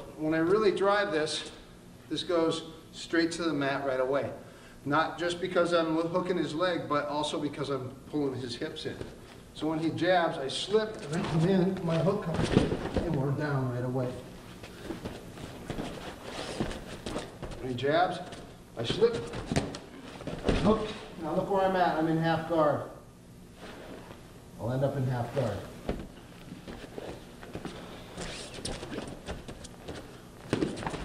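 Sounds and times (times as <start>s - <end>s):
feet shuffling on a mat: 14.3s - 21.2s, 23.5s - 24.3s, 25.3s - 31.0s
shoes scuffing on foam mat: 14.7s - 17.6s
soft thuds on a foam mat: 25.8s - 27.8s.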